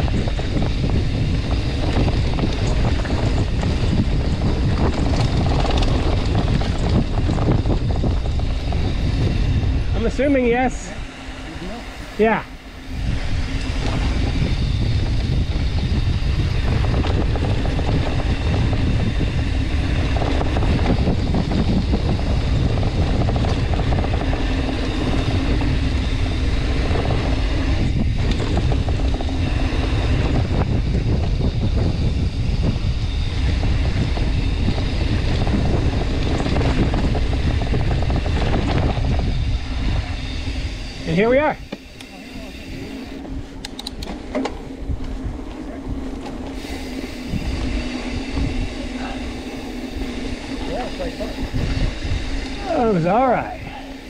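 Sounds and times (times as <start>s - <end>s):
bike tyres rolling over dirt: 0.0s - 54.0s
wind rush on microphone: 0.0s - 54.0s.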